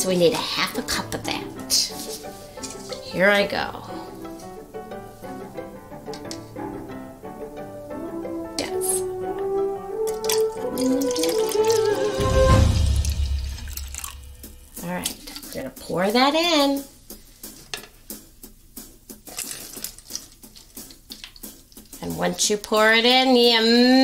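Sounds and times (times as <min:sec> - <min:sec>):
light background music: 0:00.0 - 0:24.0
liquid pouring into plastic cup: 0:10.0 - 0:14.3.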